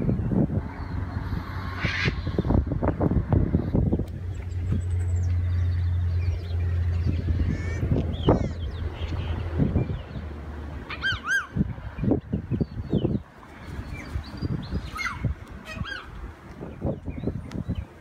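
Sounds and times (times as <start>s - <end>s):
wind buffeting microphone: 0.0s - 18.0s
bird calls: 3.6s - 18.0s.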